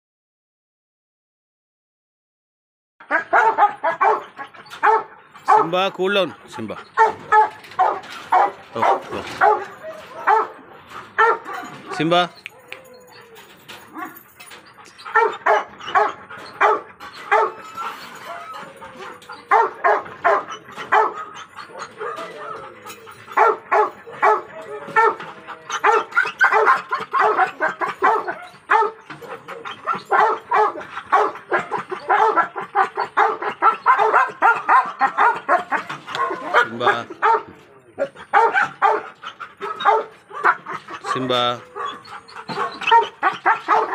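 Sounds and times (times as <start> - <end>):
dog barking: 3.0 - 5.8, 7.0 - 10.6, 11.2 - 12.0, 15.1 - 17.6, 19.4 - 22.6, 23.3 - 43.9.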